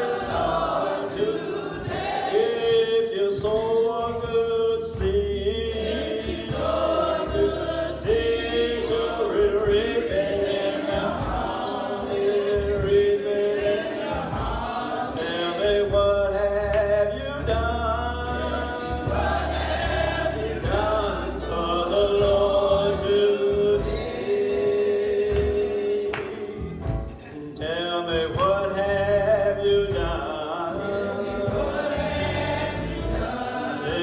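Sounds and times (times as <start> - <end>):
choir singing a hymn: 0.0 - 34.0.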